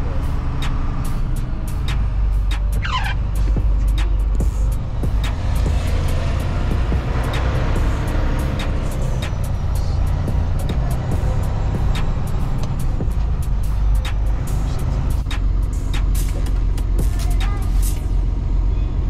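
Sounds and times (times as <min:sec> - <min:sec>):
truck engine and road rumble: 0:00.0 - 0:19.0
sharp clicks and ticks: 0:06.7 - 0:18.1.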